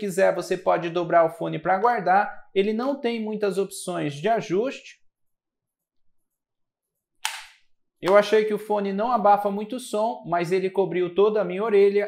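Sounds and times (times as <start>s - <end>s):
person speaking: 0.0s - 4.9s, 8.0s - 12.0s.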